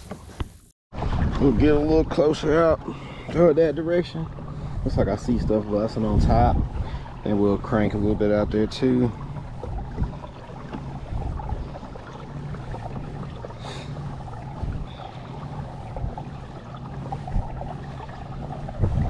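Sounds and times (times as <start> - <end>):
water washing along hull: 0.9 - 19.0
low steady hum: 1.0 - 19.0.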